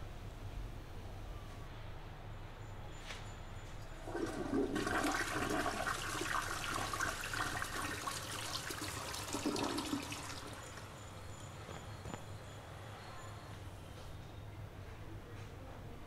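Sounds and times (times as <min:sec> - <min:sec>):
toilet flushing: 0:03.8 - 0:11.1.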